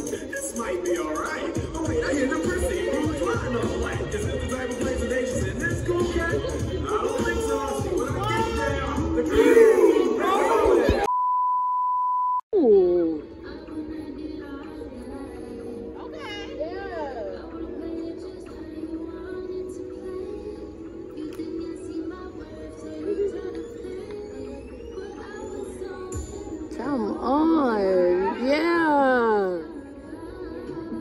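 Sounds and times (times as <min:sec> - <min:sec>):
censor bleep: 0:11.1 - 0:12.7.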